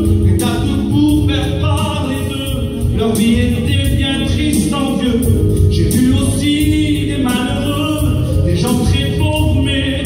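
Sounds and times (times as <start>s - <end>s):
person singing into a microphone: 0.0s - 10.0s
steady music: 0.0s - 10.0s.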